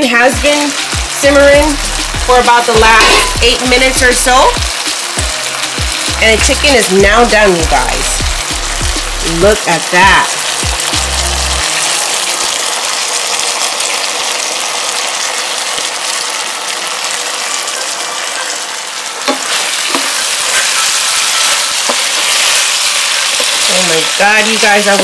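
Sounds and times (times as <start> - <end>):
chicken sizzling in a pan: 0.0 - 25.0.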